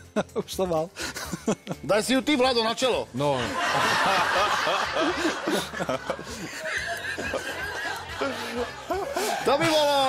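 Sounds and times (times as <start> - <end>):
people laughing: 3.2 - 10.0.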